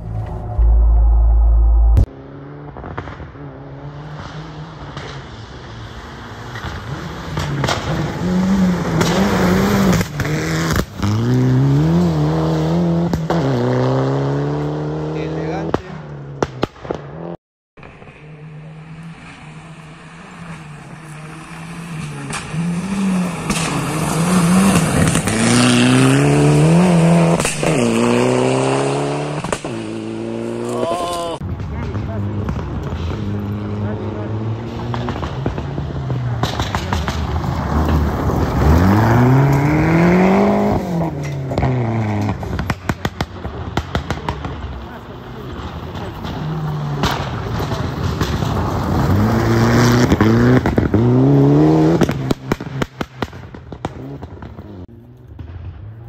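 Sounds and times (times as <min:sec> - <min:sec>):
rally car engine revving: 0:00.0 - 0:55.4.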